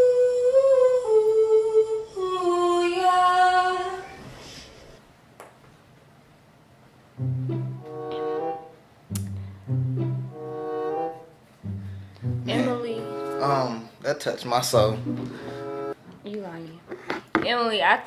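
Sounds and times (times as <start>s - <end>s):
woman singing: 0.0s - 4.2s, 12.5s - 13.1s.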